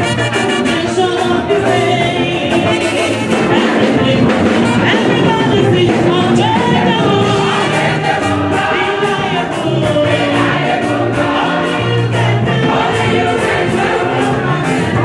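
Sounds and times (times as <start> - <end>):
bass accompaniment: 0.0 - 15.0
steady percussion beat: 0.0 - 15.0
solo singer on microphone: 0.6 - 7.7
women's choir singing: 1.3 - 15.0.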